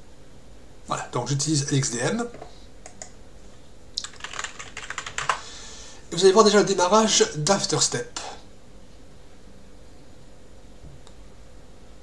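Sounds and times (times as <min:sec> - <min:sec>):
computer keyboard typing: 0:02.8 - 0:03.1, 0:04.0 - 0:05.4.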